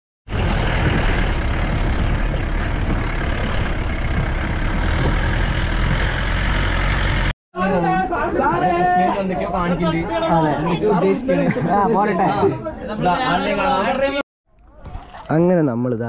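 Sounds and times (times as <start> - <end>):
jeep engine and tyre noise: 0.3 - 7.3.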